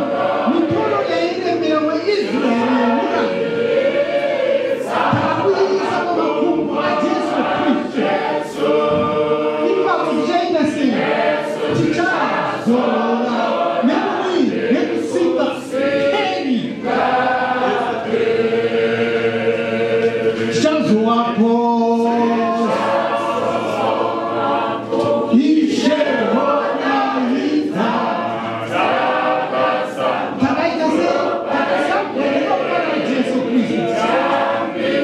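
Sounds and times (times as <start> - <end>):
man leading the singing: 0.0 - 18.5, 20.0 - 35.0
choir singing unaccompanied: 0.0 - 35.0.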